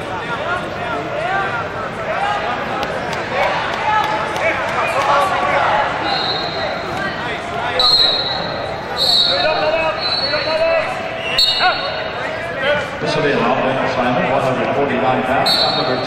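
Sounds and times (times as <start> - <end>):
referee whistle blasts: 6.0 - 6.8, 7.8 - 10.6, 11.2 - 12.0, 15.4 - 16.0.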